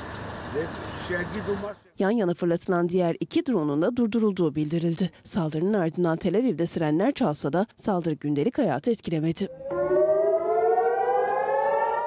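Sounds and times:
air-raid siren rising: 9.5s - 12.0s.

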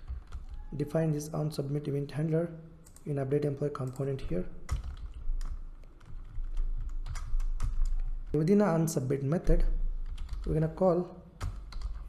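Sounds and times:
computer keyboard keystrokes: 3.8s - 8.3s, 10.0s - 10.6s, 11.4s - 12.0s.

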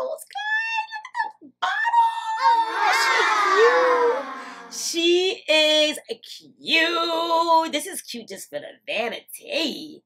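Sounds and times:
crowd cheering and whooping: 2.6s - 4.7s.

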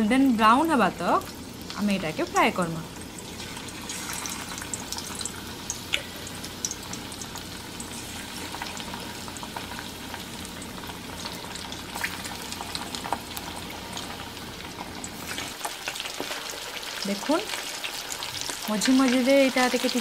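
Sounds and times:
fish sizzling in hot oil: 0.0s - 20.0s.

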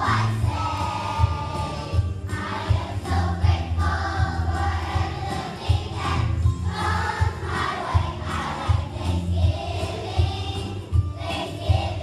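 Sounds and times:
children's choir singing: 0.0s - 12.0s
musical accompaniment with bass: 0.0s - 12.0s.

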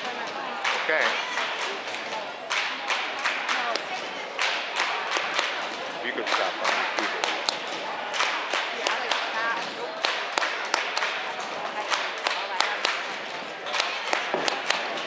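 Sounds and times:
chattering voices: 0.0s - 15.0s
people clapping hands: 0.0s - 15.0s.

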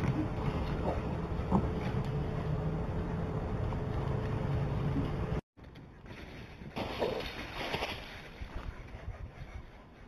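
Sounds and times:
low hum: 0.0s - 6.8s
animal running through dry leaves: 6.1s - 8.6s
wind noise on microphone: 7.8s - 10.0s.

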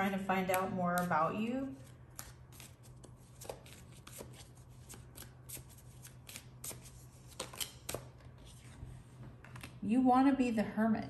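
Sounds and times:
cards being shuffled: 0.5s - 8.8s.

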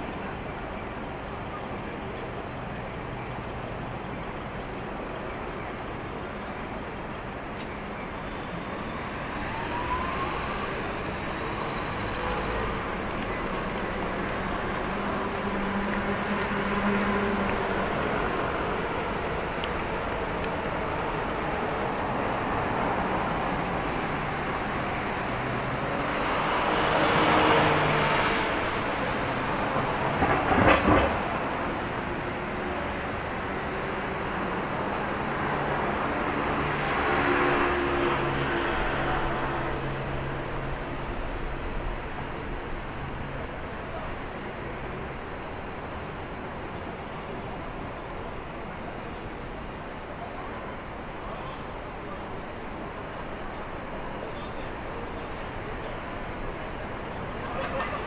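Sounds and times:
traffic hum: 0.0s - 58.0s
train rumble: 0.0s - 58.0s.

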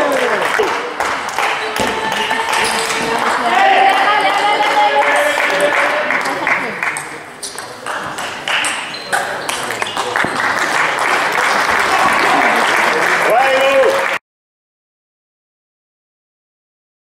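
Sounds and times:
applause: 0.0s - 7.0s, 9.6s - 14.2s.

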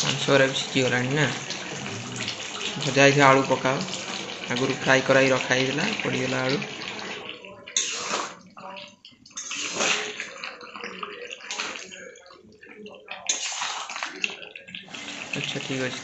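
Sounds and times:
curry sizzling and sloshing in a pan: 0.0s - 16.0s
metal spatula stirring: 3.6s - 14.7s.

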